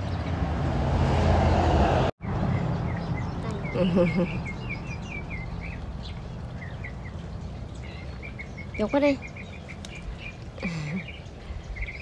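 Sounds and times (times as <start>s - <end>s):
low outdoor background noise: 2.2s - 12.0s
small bird chirping: 2.2s - 12.0s.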